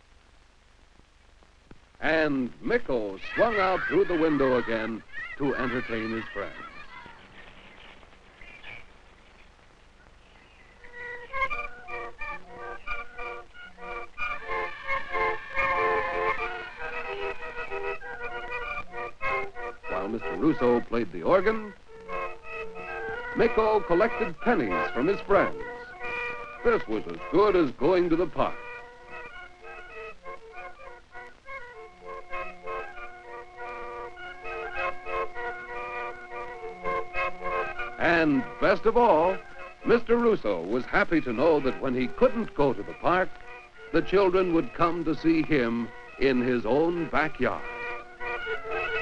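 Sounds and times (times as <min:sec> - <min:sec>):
barrel organ playing lively tune: 0:02.0 - 0:06.6, 0:10.8 - 0:49.0.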